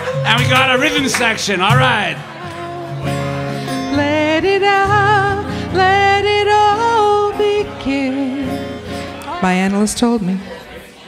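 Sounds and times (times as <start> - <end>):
acoustic guitar: 0.0 - 11.0
woman singing through speakers: 2.4 - 10.9.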